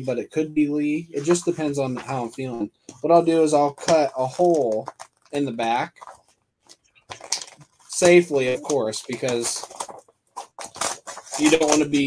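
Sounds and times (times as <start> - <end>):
plastic bag crinkling: 4.3 - 8.0, 8.6 - 12.0.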